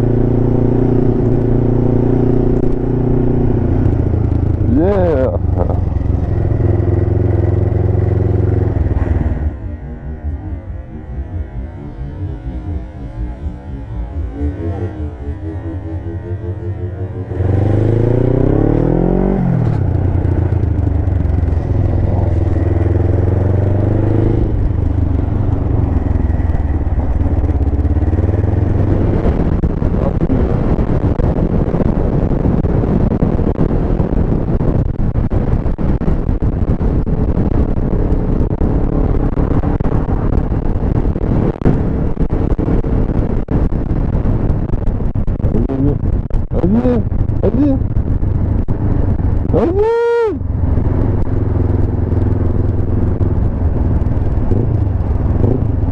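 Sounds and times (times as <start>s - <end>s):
motorcycle engine revving: 0.0s - 55.9s
wind and road noise: 0.0s - 55.9s.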